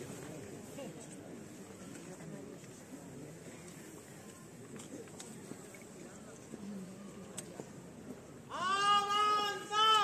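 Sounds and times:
faint background murmur: 0.0s - 10.0s
person shouting drawn-out command: 8.5s - 10.0s.

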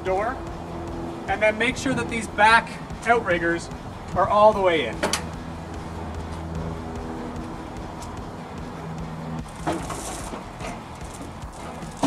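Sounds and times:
wheeled cart rattling over concrete: 9.4s - 12.0s.

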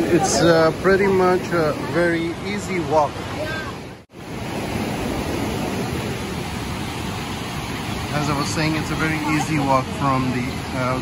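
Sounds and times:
river rapids roaring: 0.0s - 11.0s.

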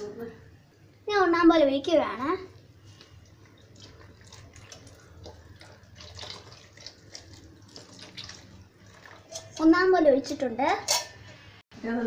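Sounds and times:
child talking: 1.1s - 2.6s, 9.5s - 10.9s
ladle stirring liquid in pot: 2.6s - 9.7s.

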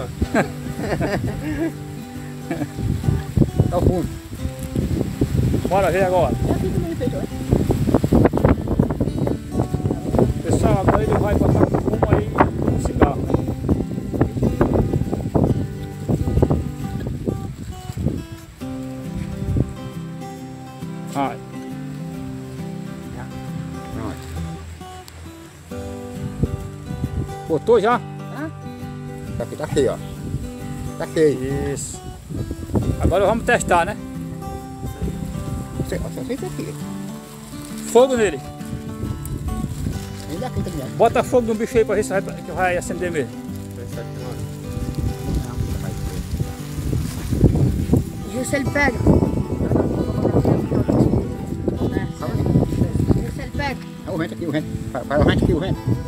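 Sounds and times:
acoustic guitar music: 0.0s - 56.0s
wind gusting on microphone: 0.0s - 56.0s.

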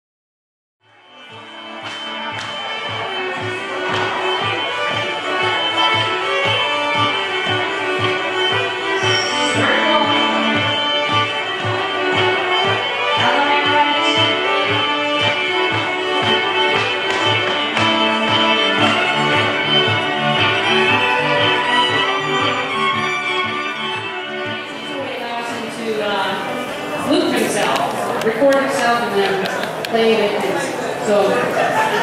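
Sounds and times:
electric fiddle playing: 0.9s - 30.4s.

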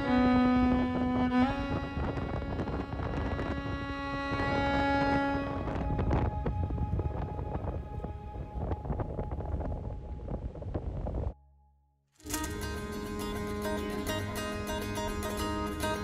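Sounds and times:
fiddle holding a note: 0.0s - 8.2s
wind rumbling on microphone: 0.0s - 11.4s.

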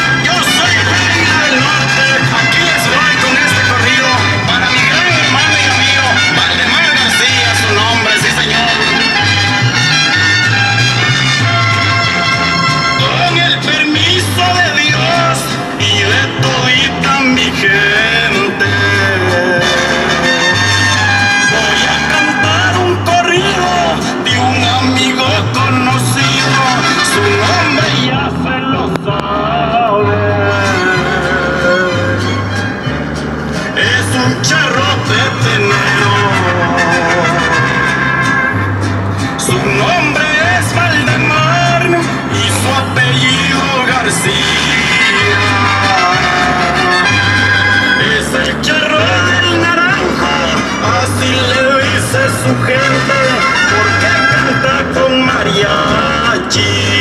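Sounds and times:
mariachi-style music: 0.0s - 57.0s.

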